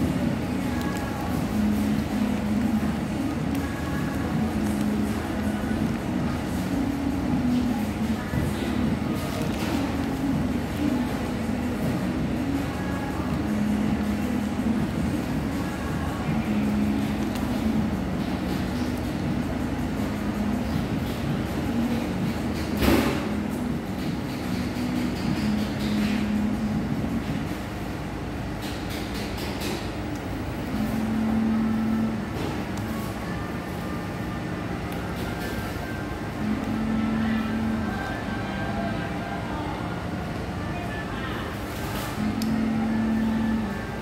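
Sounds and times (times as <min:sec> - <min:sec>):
faint background music: 0:00.0 - 0:44.0
steady low room hum: 0:00.0 - 0:44.0.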